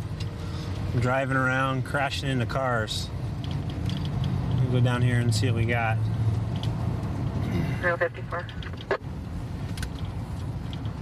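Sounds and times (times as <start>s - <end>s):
car engine hum: 0.0s - 11.0s
road noise: 0.0s - 11.0s.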